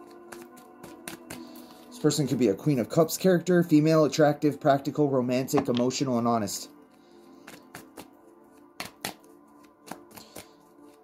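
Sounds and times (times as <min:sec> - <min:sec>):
cards being shuffled: 0:00.1 - 0:01.7, 0:07.4 - 0:11.0
cards slapping: 0:00.3 - 0:01.7, 0:07.4 - 0:08.1, 0:08.8 - 0:11.0.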